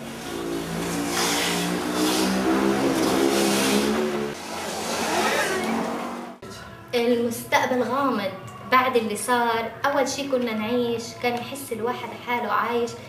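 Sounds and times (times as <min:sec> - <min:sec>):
engine revving: 0:00.0 - 0:06.4
rushing noise: 0:00.0 - 0:06.4.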